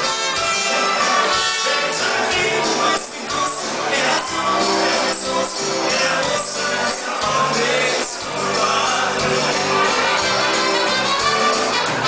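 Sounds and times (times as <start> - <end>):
live dance band playing: 0.0 - 12.0
person singing: 0.7 - 11.6.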